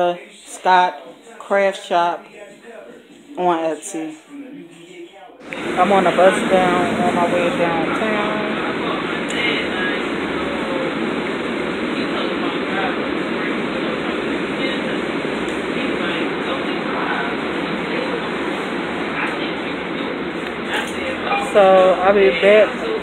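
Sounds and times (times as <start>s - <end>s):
bus engine noise: 5.4s - 23.0s.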